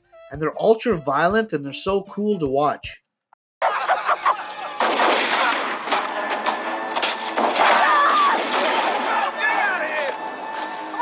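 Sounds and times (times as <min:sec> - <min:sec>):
rapid gunfire: 0:04.8 - 0:06.3, 0:07.4 - 0:09.3.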